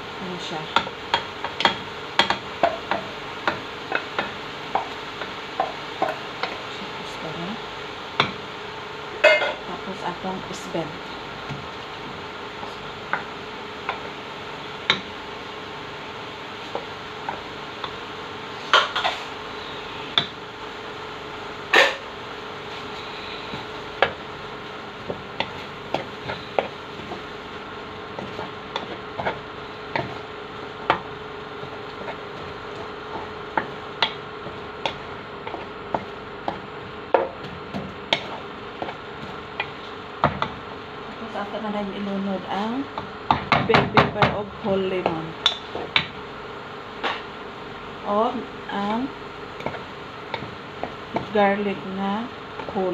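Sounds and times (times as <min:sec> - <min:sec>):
steady hum: 0:00.0 - 0:52.9
wooden spatula knocking pot: 0:00.7 - 0:06.6, 0:28.0 - 0:40.6, 0:42.9 - 0:46.2.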